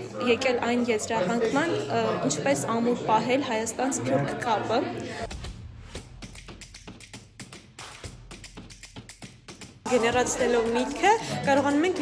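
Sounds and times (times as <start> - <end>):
faint background music: 0.0 - 6.7, 7.8 - 12.0.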